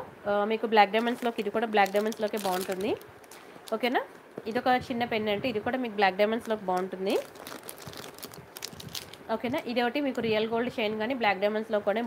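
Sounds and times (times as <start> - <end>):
plastic packet crinkling: 1.0 - 4.0, 6.4 - 10.2.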